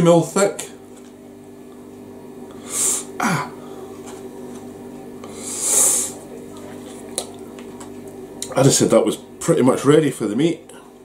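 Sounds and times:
steady low hum: 0:00.0 - 0:11.0
falling voice hum: 0:02.5 - 0:04.0
breathy hisses: 0:02.6 - 0:03.2, 0:05.2 - 0:06.2.

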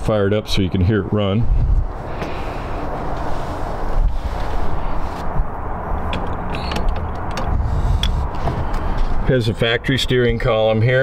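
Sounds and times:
wind rumbling on microphone: 0:00.0 - 0:10.5
microphone handling noise: 0:01.5 - 0:09.2.

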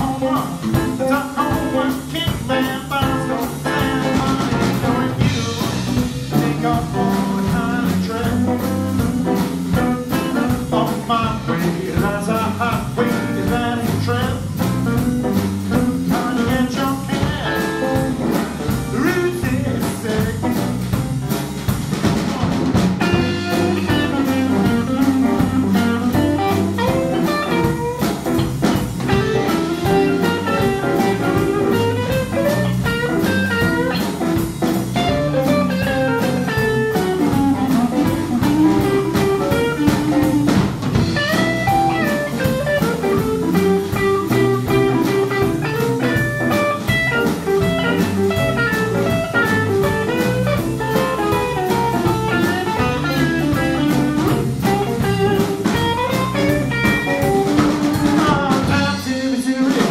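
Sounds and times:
guitar lead: 0:00.0 - 0:21.6, 0:22.3 - 0:59.4
drum kit steady beat: 0:00.0 - 0:59.9.

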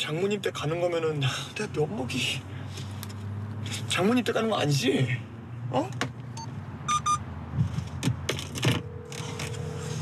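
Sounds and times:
car hum: 0:00.0 - 0:10.0
short electronic beep: 0:06.4 - 0:07.2
phone ringing tone: 0:06.9 - 0:07.2, 0:08.7 - 0:10.0.

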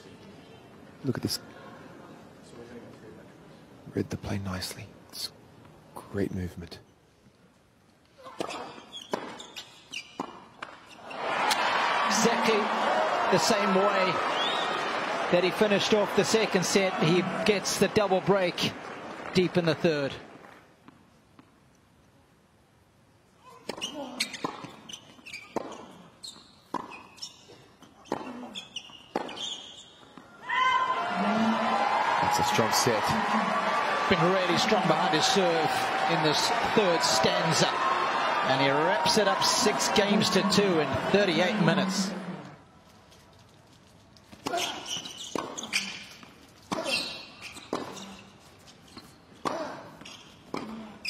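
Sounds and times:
crowd cheering and applauding: 0:11.1 - 0:19.9, 0:30.6 - 0:42.6
tennis ball bouncing: 0:25.5 - 0:25.9, 0:26.7 - 0:27.2, 0:28.0 - 0:28.4, 0:29.1 - 0:29.6, 0:45.3 - 0:45.8, 0:47.7 - 0:48.0.

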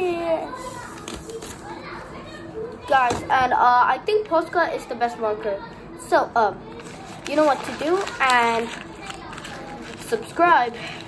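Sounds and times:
paper rustling: 0:00.5 - 0:02.0, 0:06.8 - 0:11.0.

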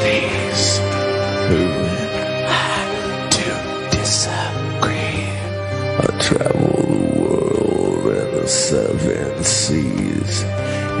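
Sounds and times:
low bass: 0:00.0 - 0:11.0
man growling wordless vocal: 0:00.0 - 0:11.0.

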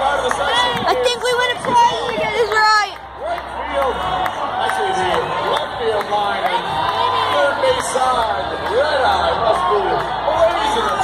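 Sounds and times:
stadium crowd cheering and yelling: 0:00.0 - 0:11.0.

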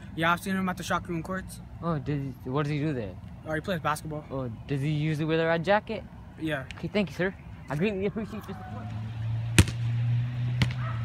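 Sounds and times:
sharp knocks: 0:10.6 - 0:10.8.

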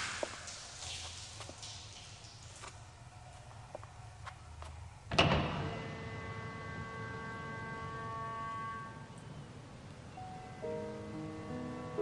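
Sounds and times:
glass door slamming: 0:05.1 - 0:06.3.

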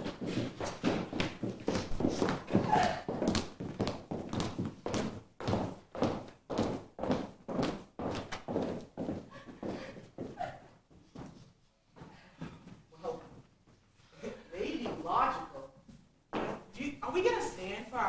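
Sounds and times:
footsteps on wooden stage: 0:00.0 - 0:13.9, 0:14.8 - 0:16.7.

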